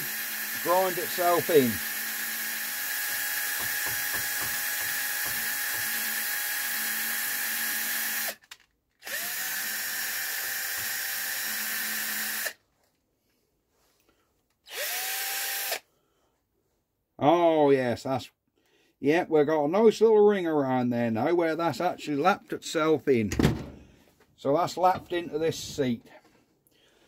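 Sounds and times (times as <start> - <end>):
cordless drill running: 0.0 - 12.6, 14.7 - 15.8.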